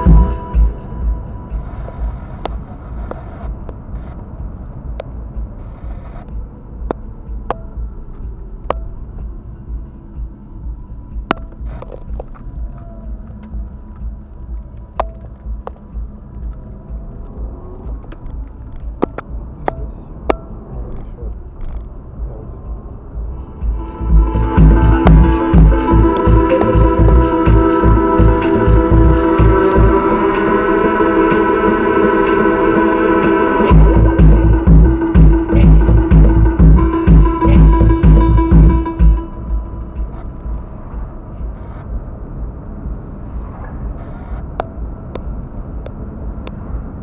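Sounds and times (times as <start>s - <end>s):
car cabin rumble: 0.0s - 47.0s
faint music: 0.0s - 47.0s
sharp clicks and ticks: 11.2s - 22.2s.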